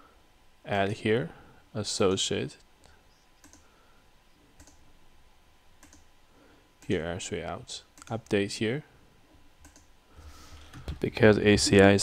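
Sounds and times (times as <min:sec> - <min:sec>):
faint computer mouse clicks: 0:03.4 - 0:03.7, 0:04.6 - 0:04.8, 0:05.8 - 0:06.1, 0:09.6 - 0:09.9.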